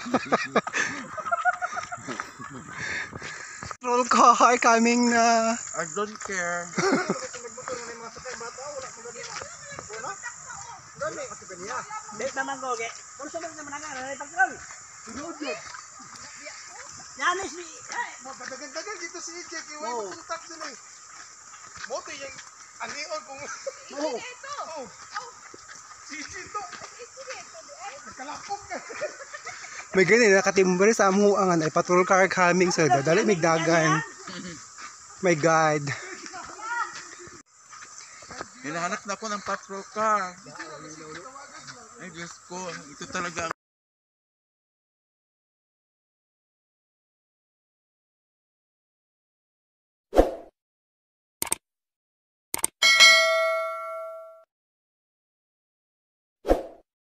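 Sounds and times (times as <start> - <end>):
mouse double clicks: 52.6 - 52.8
bright bell ding: 52.8 - 54.5.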